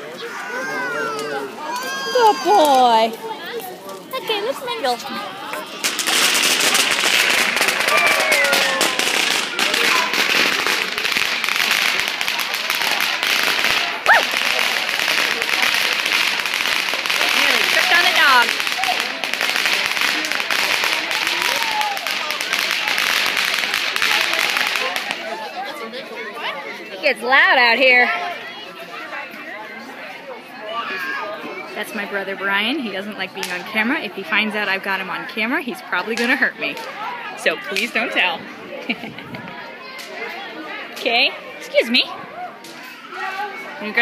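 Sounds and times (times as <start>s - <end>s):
fireworks crackling and popping: 2.2s - 25.4s, 32.7s - 37.0s
sharp firework bangs: 5.8s - 25.2s.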